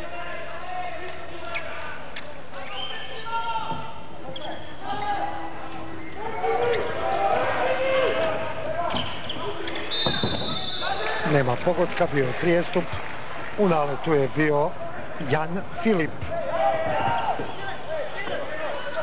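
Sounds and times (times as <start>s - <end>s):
referee's whistle: 2.6s - 3.3s, 9.0s - 11.2s
people shouting: 4.8s - 9.9s, 16.3s - 19.0s.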